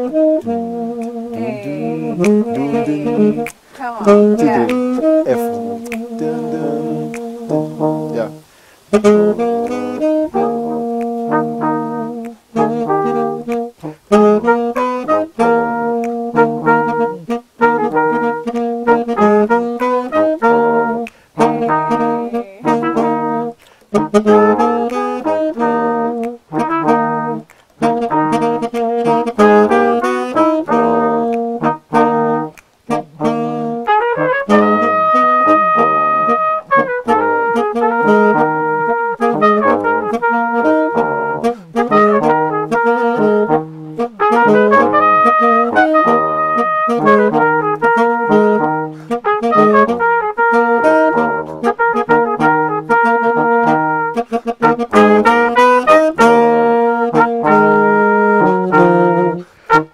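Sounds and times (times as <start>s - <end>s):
saxophone: 0.0s - 59.9s
trombone: 0.0s - 59.9s
trumpet: 0.0s - 59.9s.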